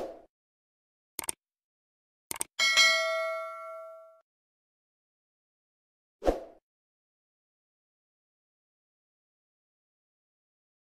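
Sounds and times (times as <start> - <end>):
notification bell ding: 2.6 - 4.2.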